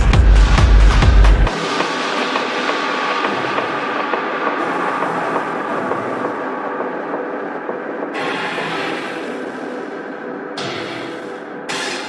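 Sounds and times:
rumbling synth texture: 1.4 - 12.0.

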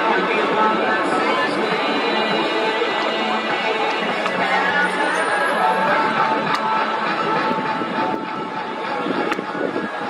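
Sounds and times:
stadium crowd hubbub: 0.0 - 10.0.

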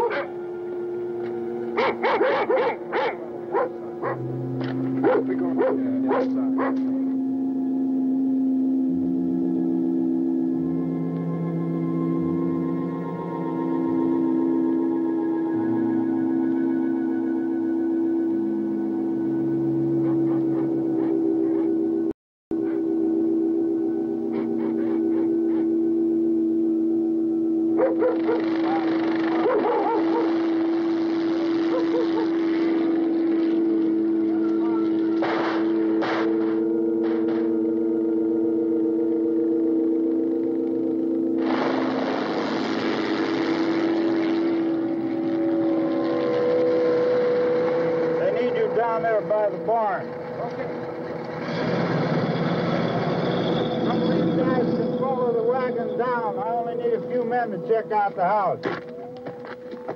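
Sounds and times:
dogs barking and yelping: 0.0 - 0.4, 1.7 - 7.1, 19.8 - 21.9, 22.6 - 22.9, 24.3 - 25.8, 27.8 - 30.6, 31.5 - 32.8
droning horror film score: 0.0 - 59.9.

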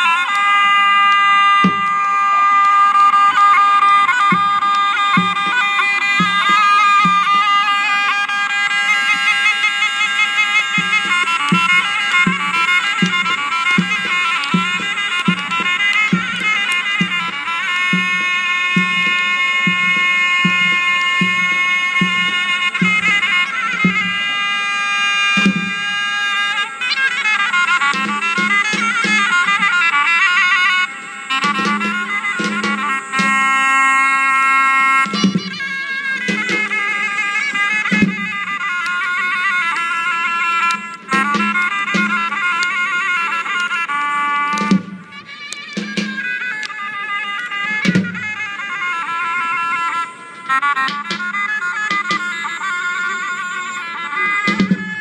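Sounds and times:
reedy wind instrument melody: 0.0 - 55.0.

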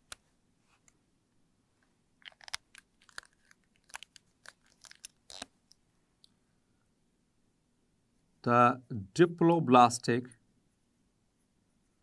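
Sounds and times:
handling clicks and crackles: 2.2 - 5.8.

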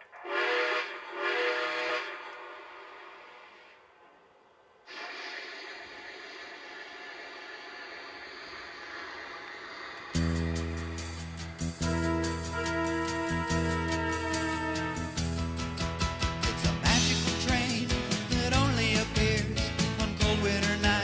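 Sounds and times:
steam whistle blasts: 0.1 - 3.7, 10.2 - 15.4
steady steam hiss: 4.9 - 12.0.

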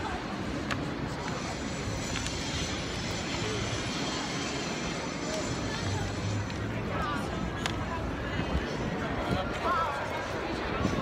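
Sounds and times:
city square rushing noise: 0.0 - 11.0.

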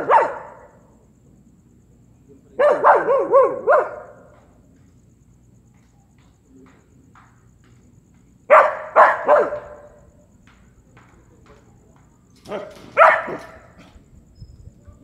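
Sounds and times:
dog barking: 0.0 - 0.8, 2.6 - 4.4, 8.5 - 10.0, 12.4 - 14.0.

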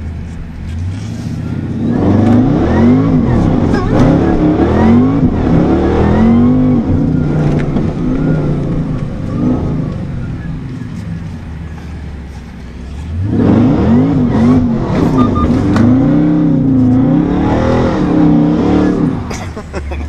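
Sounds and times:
car engine revving hard: 1.6 - 10.1, 13.0 - 19.4.

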